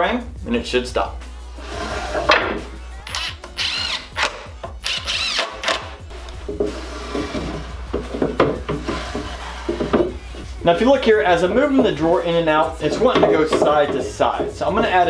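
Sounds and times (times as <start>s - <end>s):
wooden drawer sliding and knocking: 1.6s - 2.7s, 6.1s - 10.5s, 12.8s - 15.0s.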